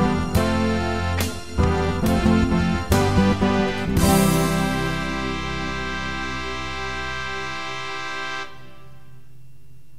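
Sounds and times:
acoustic guitar chord ringing: 0.0s - 8.0s.

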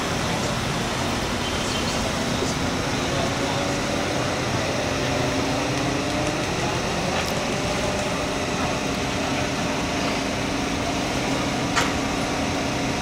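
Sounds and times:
faint voices: 0.0s - 11.7s
car engine running: 0.0s - 13.0s
outdoor background noise: 0.0s - 13.0s.

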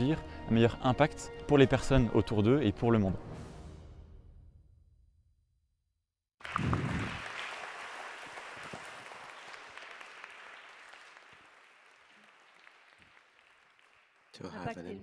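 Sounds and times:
audience applauding: 6.4s - 15.0s.

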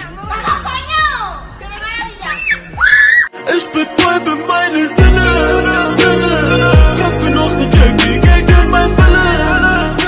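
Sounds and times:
young people talking: 0.0s - 2.9s.

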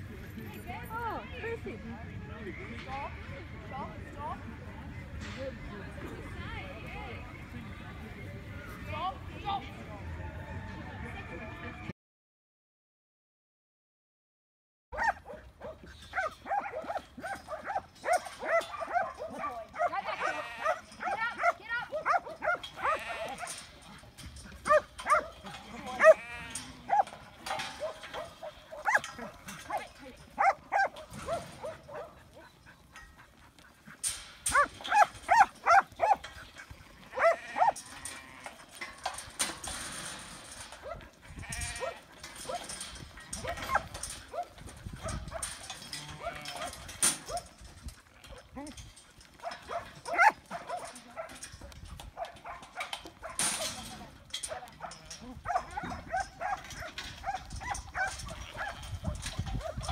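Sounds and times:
dog barking: 15.0s - 23.6s, 24.6s - 25.4s, 26.0s - 26.3s, 26.9s - 27.1s, 27.8s - 29.1s, 29.7s - 32.5s, 34.5s - 36.2s, 37.1s - 37.8s, 40.8s - 41.0s, 41.8s - 42.7s, 43.4s - 45.4s, 49.4s - 51.4s, 52.2s - 53.8s, 54.5s - 59.9s
sheep bleating: 19.8s - 21.4s, 22.6s - 23.6s, 25.4s - 27.4s, 36.9s - 38.7s, 41.2s - 42.2s, 45.9s - 46.7s, 58.2s - 59.1s.

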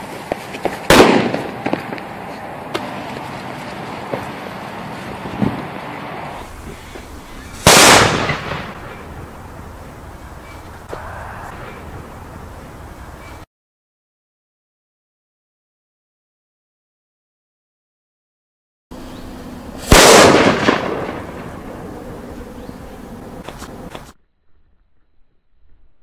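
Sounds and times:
very loud firecracker bang: 0.6s - 2.0s, 7.0s - 9.0s, 19.8s - 21.6s.

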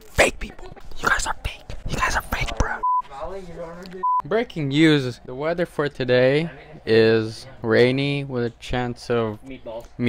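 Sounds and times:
person whispering: 0.0s - 2.8s.

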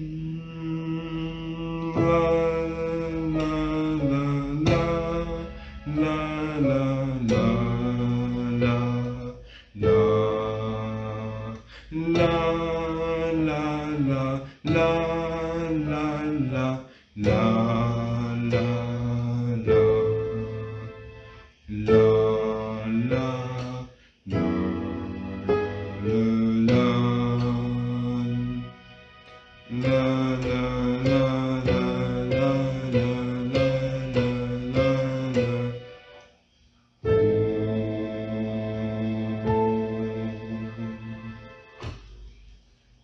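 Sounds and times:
man singing long notes: 0.0s - 36.2s, 37.0s - 41.9s
low musical accompaniment: 0.0s - 43.0s.

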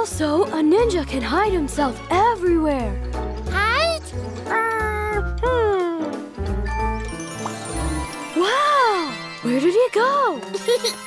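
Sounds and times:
children's background music: 0.0s - 11.0s
squeaky cartoon voice: 3.6s - 5.2s.

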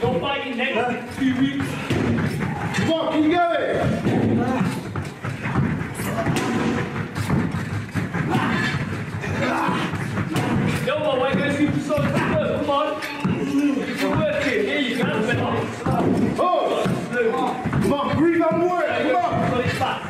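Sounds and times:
thuds of hits: 1.2s - 20.0s
people shouting: 1.3s - 20.0s.

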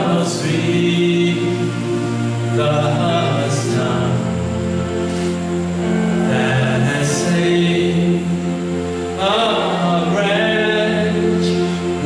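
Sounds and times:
man singing through loudspeaker: 0.0s - 4.4s, 6.0s - 8.6s, 9.2s - 12.0s.

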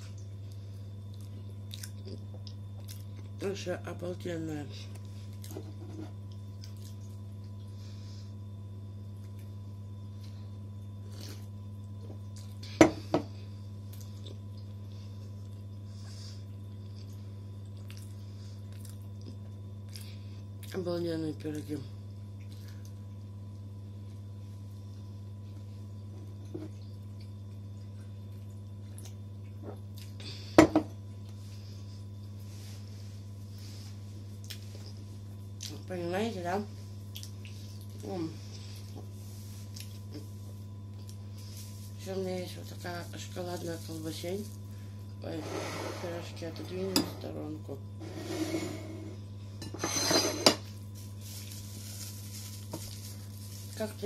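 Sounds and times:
steady low hum: 0.0s - 54.0s
plastic wrapper rustling: 50.8s - 54.0s.

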